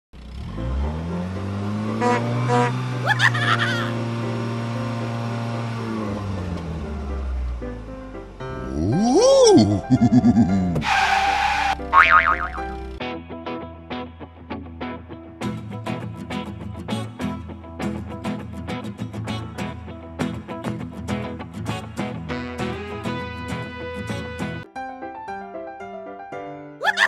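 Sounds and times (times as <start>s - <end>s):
car engine revving: 0.2s - 3.0s, 3.9s - 7.8s
cartoon boing sound effect: 11.9s - 12.7s.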